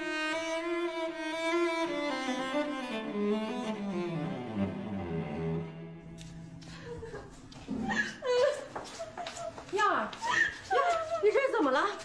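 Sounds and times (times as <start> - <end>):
quick footsteps on hard floor: 6.0 - 12.0
woman sobbing: 6.7 - 9.6, 10.2 - 11.6.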